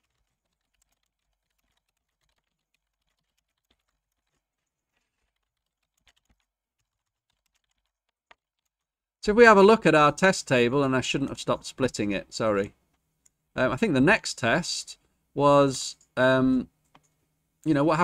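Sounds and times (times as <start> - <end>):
keyboard typing: 0.0 - 8.9, 16.8 - 17.2.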